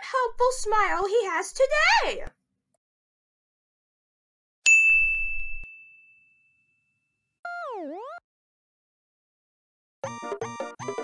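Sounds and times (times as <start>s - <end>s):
bell-like cartoon ding: 4.7s - 7.0s.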